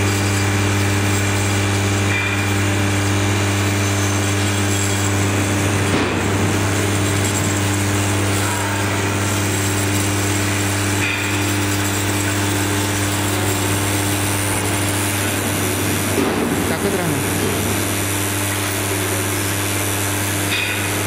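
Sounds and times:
electromagnetic hum: 0:00.0 - 0:21.0.

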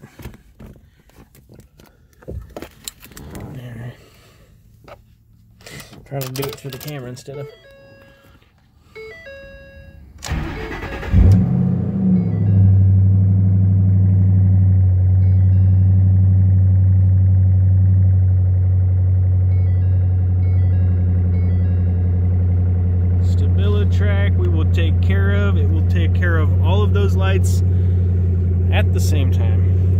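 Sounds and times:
car engine idling: 0:10.3 - 0:29.9.

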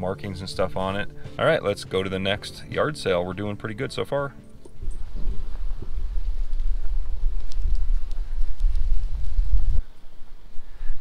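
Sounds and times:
wind buffeting microphone: 0:04.6 - 0:11.0.

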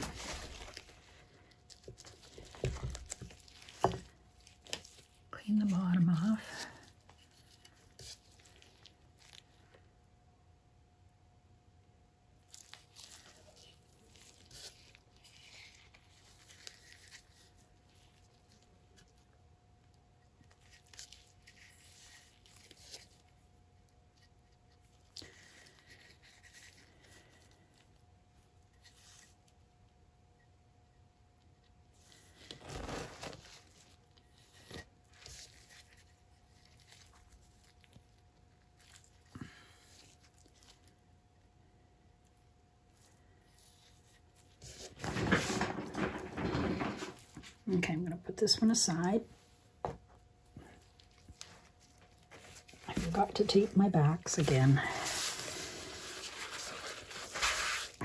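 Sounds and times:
gloved fingers rustling and scraping: 0:00.0 - 0:09.6, 0:12.4 - 0:19.3, 0:20.4 - 0:23.5, 0:24.1 - 0:29.6, 0:31.9 - 0:41.0, 0:42.2 - 0:47.6, 0:49.3 - 0:58.0.

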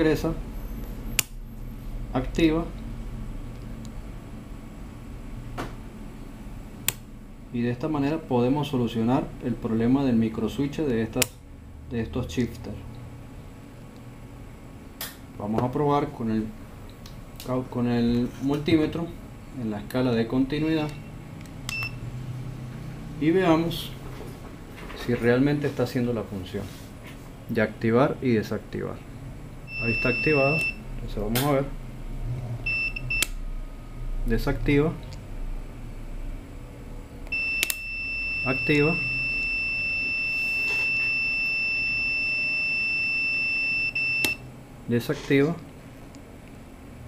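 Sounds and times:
low steady hum: 0:00.0 - 0:47.0
click: 0:06.8 - 0:07.0, 0:37.6 - 0:37.8
multimeter beep: 0:20.8 - 0:22.0, 0:29.7 - 0:30.8, 0:32.6 - 0:33.3, 0:37.3 - 0:44.4
microswitch click: 0:37.3 - 0:37.8, 0:44.2 - 0:44.4.

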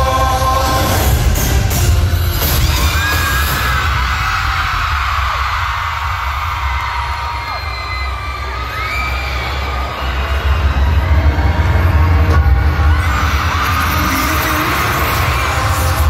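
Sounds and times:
crowd screaming and cheering: 0:00.0 - 0:16.0.

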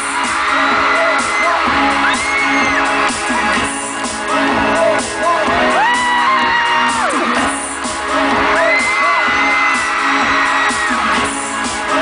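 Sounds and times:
fans screaming: 0:00.0 - 0:03.2, 0:05.5 - 0:07.6, 0:08.3 - 0:11.4
loud music with a steady beat: 0:00.0 - 0:12.0.

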